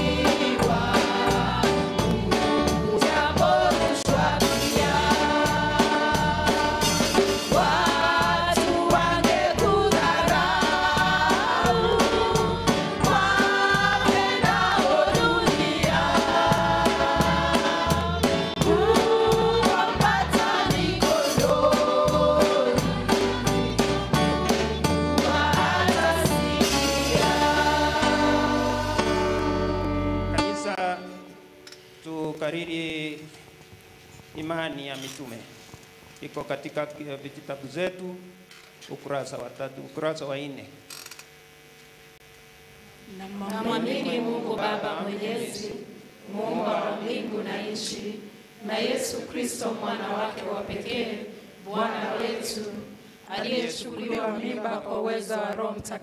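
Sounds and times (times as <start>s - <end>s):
steady beat: 0.0s - 29.2s
group singing a hymn in harmony: 0.0s - 29.9s, 43.3s - 56.0s
low electrical hum: 0.0s - 56.0s.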